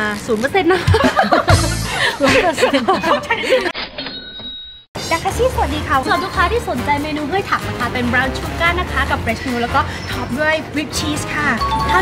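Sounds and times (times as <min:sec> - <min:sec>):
women laughing: 0:00.6 - 0:03.8
steady ringing tones: 0:04.0 - 0:05.0.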